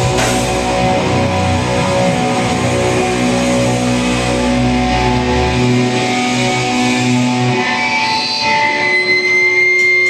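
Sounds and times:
electric guitars ringing: 0.0s - 10.0s.

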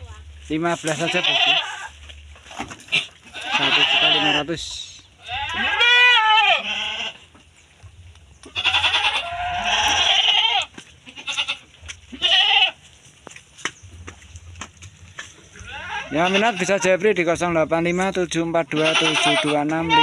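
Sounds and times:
goats bleating: 0.9s - 2.0s, 2.8s - 4.6s, 5.2s - 7.3s, 8.4s - 12.9s, 15.5s - 17.2s, 18.6s - 20.0s.

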